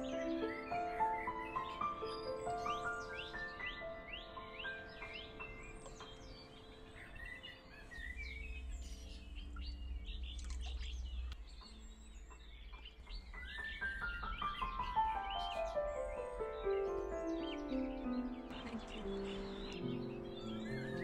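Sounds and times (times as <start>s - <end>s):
background music: 0.0s - 21.0s
birds singing and chirping: 0.0s - 21.0s.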